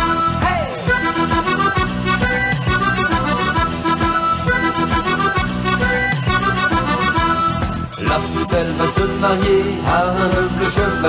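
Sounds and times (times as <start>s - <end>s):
accordions playing: 0.0s - 11.0s
steady beat: 0.0s - 11.0s.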